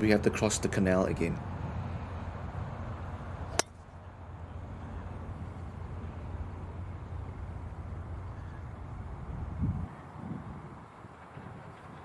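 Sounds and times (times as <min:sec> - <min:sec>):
low background hum: 0:00.0 - 0:12.0
golf club striking ball: 0:03.5 - 0:03.8.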